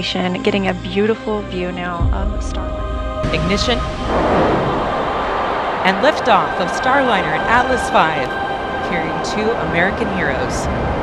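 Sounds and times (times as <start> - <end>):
rocket engines roaring: 2.1 - 11.0.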